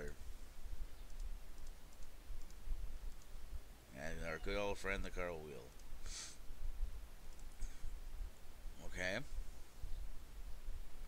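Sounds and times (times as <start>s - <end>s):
low steady hum: 0.0s - 11.0s
computer mouse clicking: 1.0s - 3.3s, 5.7s - 6.0s, 7.3s - 7.6s.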